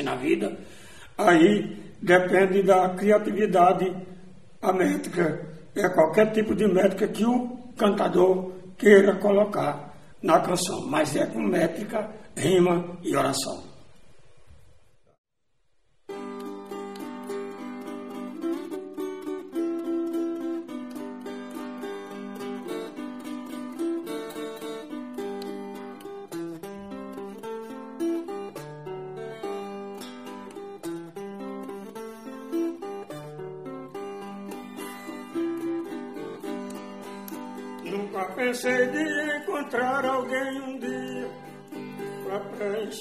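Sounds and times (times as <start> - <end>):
plucked string melody: 16.1 - 43.0.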